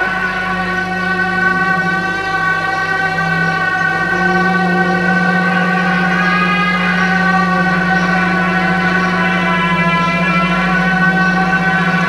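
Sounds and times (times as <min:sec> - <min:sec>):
reedy wind instrument drone: 0:00.0 - 0:12.0.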